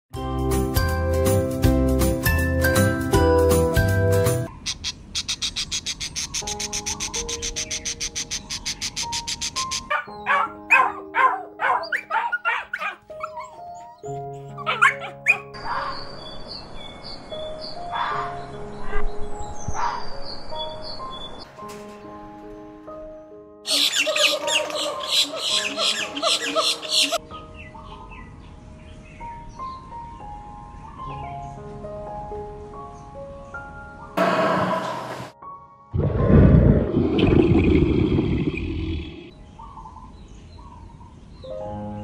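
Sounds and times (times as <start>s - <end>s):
fast animal chattering: 4.5s - 9.9s, 23.7s - 27.2s
high bird chirps: 4.5s - 10.4s, 23.7s - 27.2s
soft piano music: 6.4s - 34.2s, 39.3s - 42.0s.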